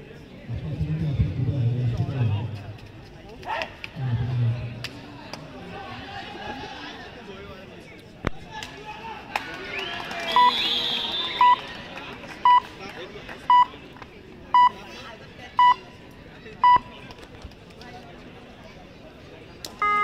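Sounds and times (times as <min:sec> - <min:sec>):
crowd voices: 0:00.0 - 0:20.0.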